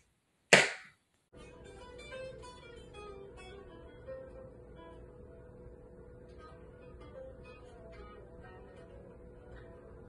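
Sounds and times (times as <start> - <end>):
plucked acoustic guitar music: 1.4 - 10.0.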